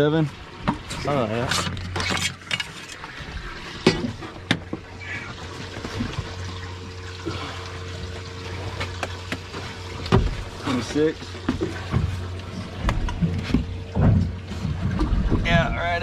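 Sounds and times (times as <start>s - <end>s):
low hum: 0.0s - 16.0s
water sounds: 0.0s - 16.0s
thump on boat deck: 10.0s - 10.5s, 12.8s - 15.5s.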